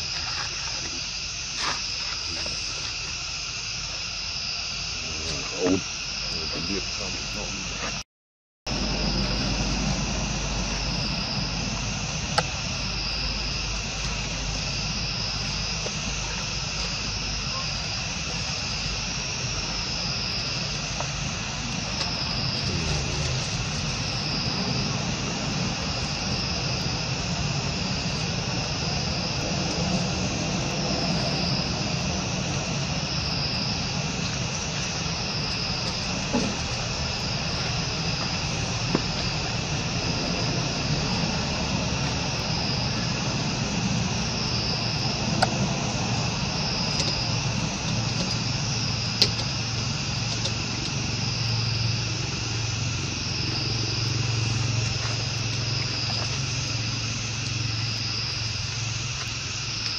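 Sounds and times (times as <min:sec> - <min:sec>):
insect chorus: 0:00.0 - 0:08.0, 0:08.7 - 0:59.9
low steady rumble: 0:08.7 - 0:59.9.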